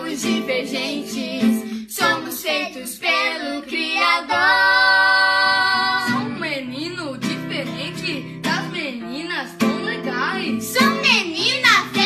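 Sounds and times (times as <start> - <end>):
woman and children singing: 0.0 - 12.0.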